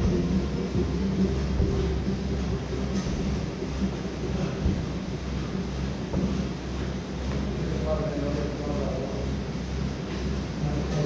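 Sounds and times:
faint music: 0:00.0 - 0:11.0
low room noise rumble: 0:00.0 - 0:11.0.

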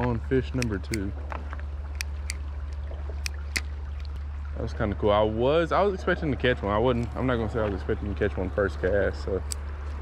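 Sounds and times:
creek water running: 0:00.0 - 0:10.0.

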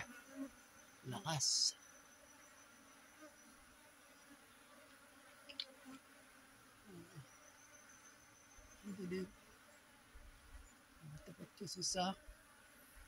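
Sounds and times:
honeybee swarm humming: 0:00.0 - 0:13.0.

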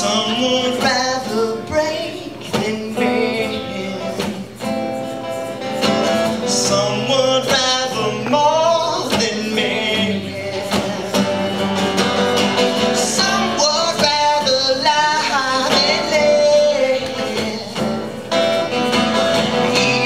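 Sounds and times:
man singing: 0:00.0 - 0:04.7, 0:05.7 - 0:20.0
acoustic guitar playing: 0:00.0 - 0:20.0.

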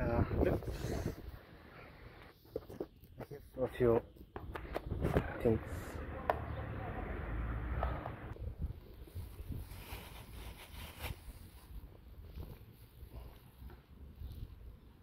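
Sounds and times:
close rustling and handling: 0:08.8 - 0:14.7.

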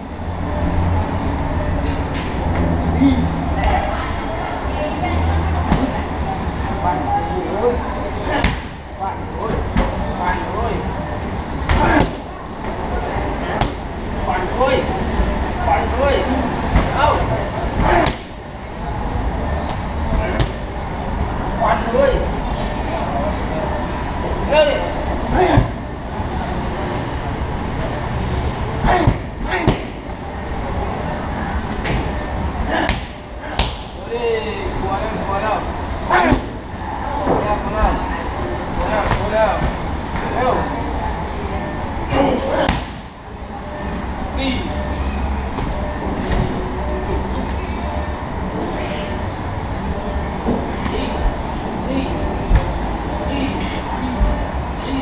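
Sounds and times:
heavy vehicles rumbling past: 0:00.0 - 0:55.0
road traffic drone: 0:00.0 - 0:55.0.

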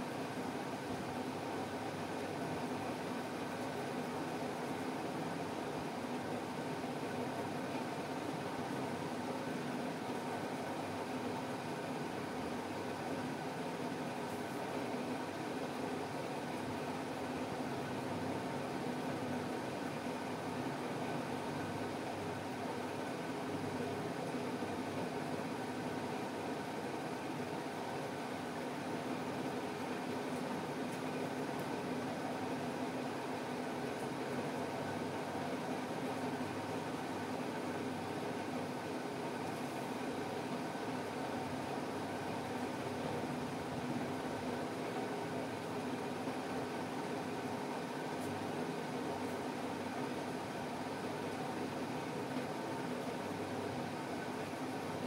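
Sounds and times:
mechanical hum and hiss: 0:00.0 - 0:55.0.

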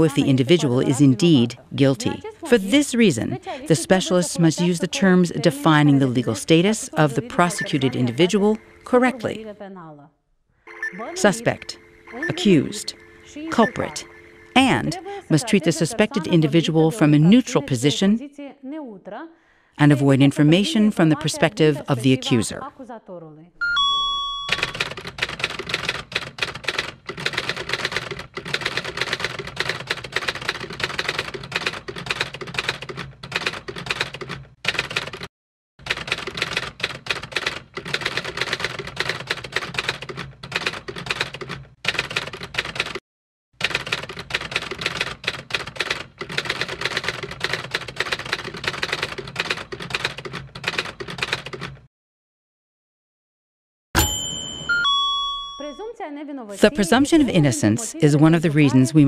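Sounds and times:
typewriter bell ding: 0:23.6 - 0:25.2, 0:54.0 - 0:55.9
rapid typewriter keystroke clicks: 0:24.6 - 0:43.0, 0:43.6 - 0:51.9.

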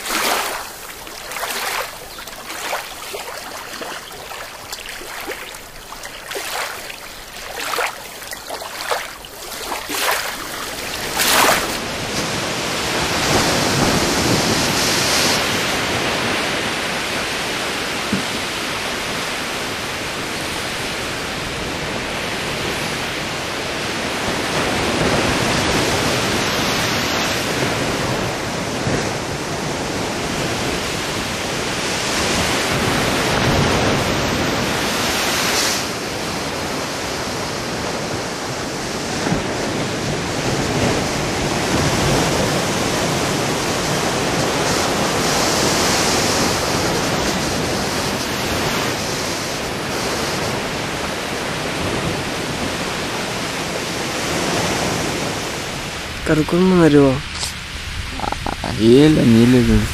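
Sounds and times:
surf washing onto beach: 0:00.0 - 0:59.9
wind: 0:00.0 - 0:59.9.

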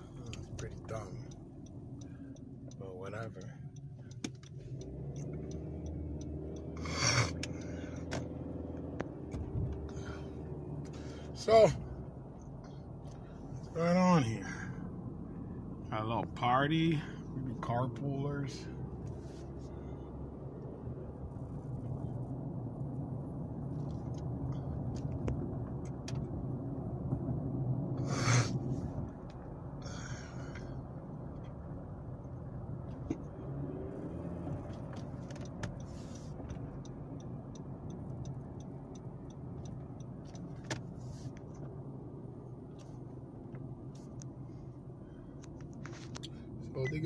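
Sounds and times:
car engine hum and road noise: 0:00.0 - 0:47.0.

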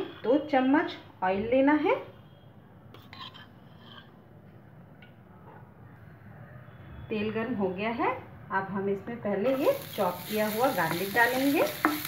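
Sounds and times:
spoon clinking on frying pan: 0:10.9 - 0:12.0.

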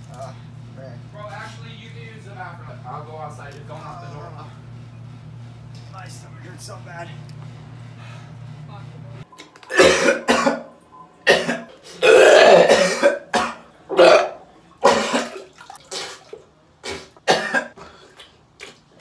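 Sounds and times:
man retching and gagging: 0:09.6 - 0:17.8.

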